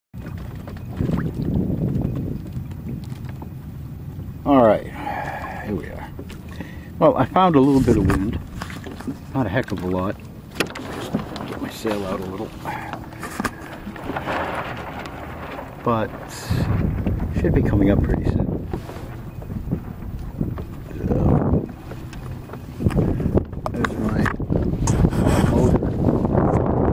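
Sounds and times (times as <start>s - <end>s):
water lapping against hull: 0.1s - 26.9s
wind rumbling on microphone: 0.2s - 26.9s
person speaking: 7.0s - 8.4s, 11.4s - 13.6s.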